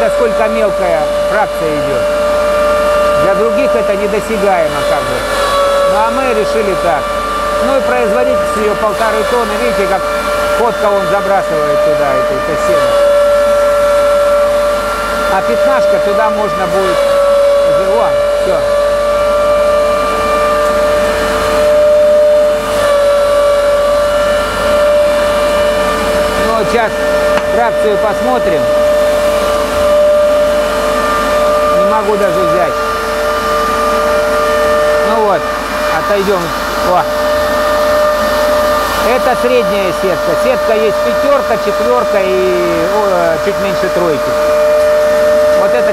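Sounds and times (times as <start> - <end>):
hay cutter high whine: 0.0 - 45.9.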